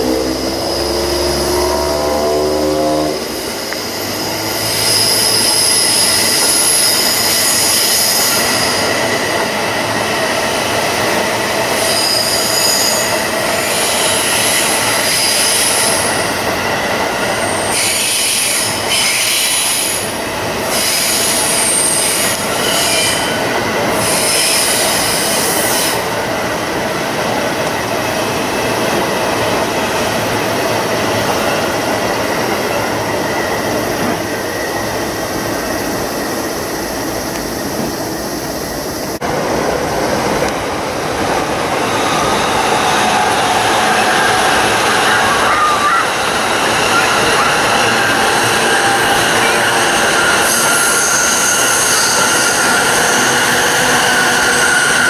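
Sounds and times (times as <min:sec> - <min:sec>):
train rumbling: 0:00.0 - 0:55.0
train wheels squealing: 0:00.1 - 0:26.6, 0:27.7 - 0:39.2, 0:41.7 - 0:55.0.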